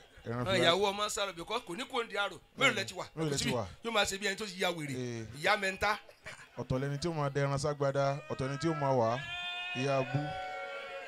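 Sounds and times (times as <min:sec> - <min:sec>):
man's voice bleating into microphone: 0:08.2 - 0:10.5.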